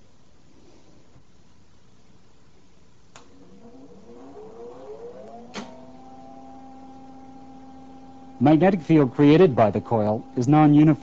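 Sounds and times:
capacitor bank electrical whine: 0.0 - 11.0.

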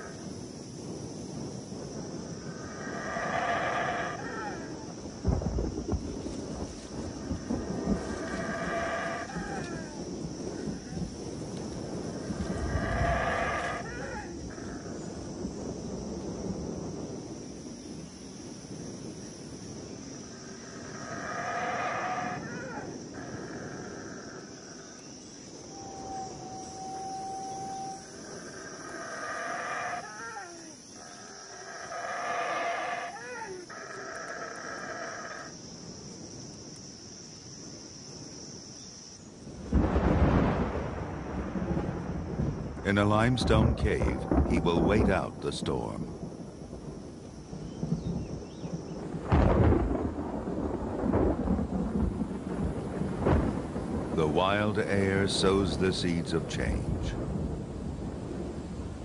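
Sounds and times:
high insect-like hum: 0.0 - 59.0
drawn-out animal calls: 2.7 - 4.8, 7.5 - 11.1, 12.2 - 15.0, 20.7 - 24.5, 25.8 - 35.5.

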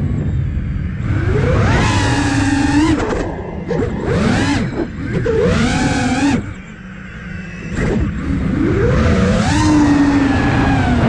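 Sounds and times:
drone motors whining: 0.0 - 11.0.

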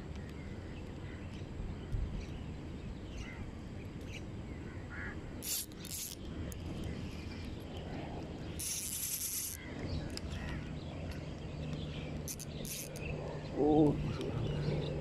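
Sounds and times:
low steady hum: 0.0 - 15.0
fishing reel whirring: 5.4 - 6.2, 8.5 - 9.7, 12.2 - 13.1.

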